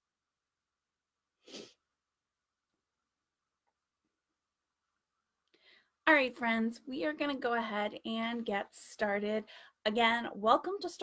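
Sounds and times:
person sneezing: 1.5 - 1.8.

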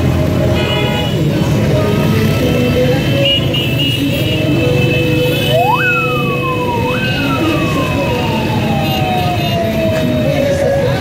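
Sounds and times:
road traffic rumble: 0.0 - 11.0
siren wailing: 5.5 - 11.0.

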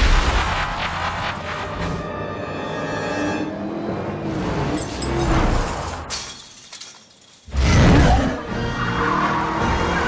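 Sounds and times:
film music: 1.0 - 5.4, 7.6 - 10.0
glass shattering: 4.8 - 7.6.

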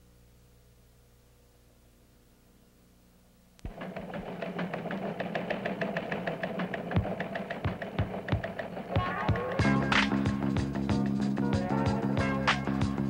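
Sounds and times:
steady low hum: 0.0 - 13.0
rapid mechanical clicking: 3.6 - 10.1.

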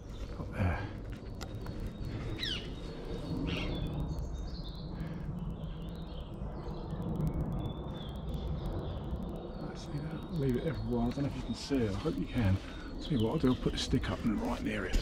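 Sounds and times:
birds calling and chirping: 0.0 - 15.0
low rumble: 0.0 - 15.0.

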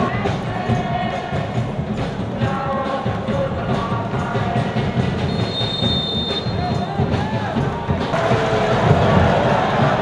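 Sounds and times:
stadium crowd noise: 0.0 - 10.0
referee's whistle blast: 5.3 - 6.9.

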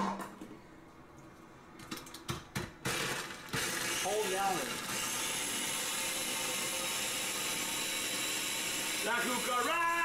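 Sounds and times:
electric blender whirring: 2.9 - 10.0.

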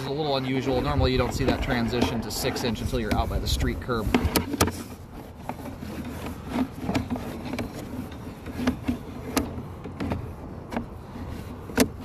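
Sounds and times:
cable scraping in a pipe: 0.0 - 12.0.

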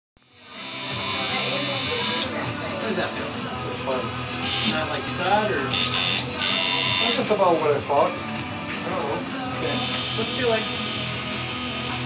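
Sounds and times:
tattoo machine buzzing: 0.2 - 2.4, 4.4 - 5.0, 5.7 - 7.4, 9.5 - 12.0
background music: 0.3 - 12.0.

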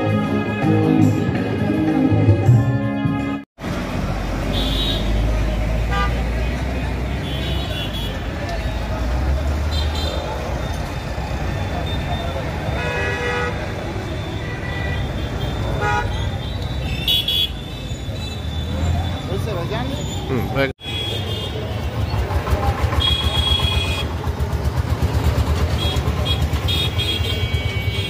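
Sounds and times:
traffic engine rumble: 3.6 - 28.0
vehicle horn toots: 4.5 - 5.2, 7.2 - 8.3, 11.8 - 19.2, 20.8 - 22.0, 22.9 - 24.1, 25.7 - 28.0.

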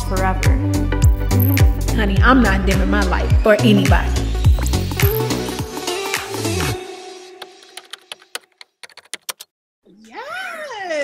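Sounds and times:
keyboard typing: 1.1 - 1.8, 4.5 - 5.6, 7.4 - 9.5
person speaking: 1.1 - 5.6.

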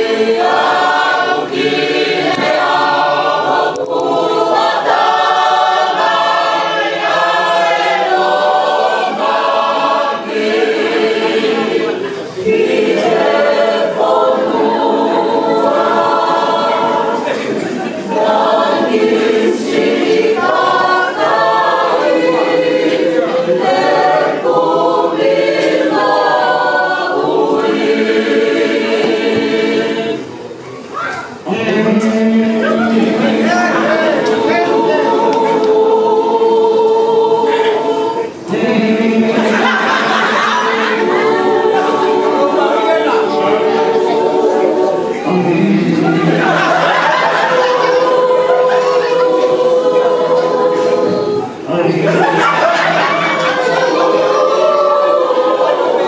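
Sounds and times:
church choir singing a hymn: 0.0 - 30.7, 31.3 - 56.0.

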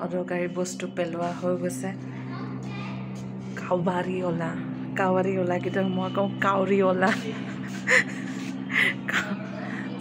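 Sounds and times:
steady low hum: 0.0 - 10.0
woman laughing breathily: 7.1 - 10.0.

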